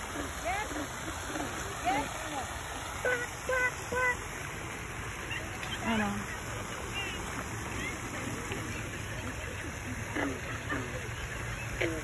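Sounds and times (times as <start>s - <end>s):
frogs croaking: 0.0s - 12.0s.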